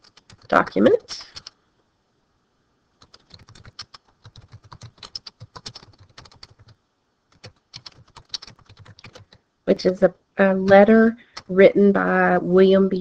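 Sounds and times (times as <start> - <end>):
typing on computer keyboard: 0.0 - 1.6, 3.0 - 9.4.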